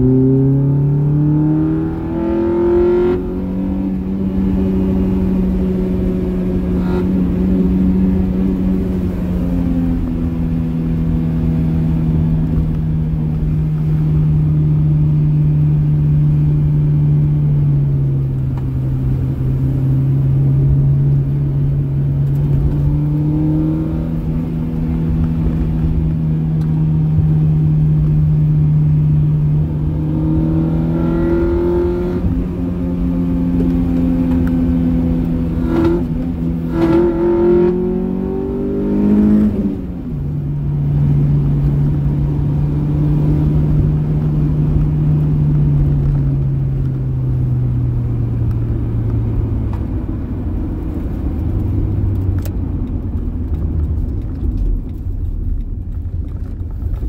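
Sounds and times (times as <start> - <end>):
car engine droning: 0.0 - 57.0.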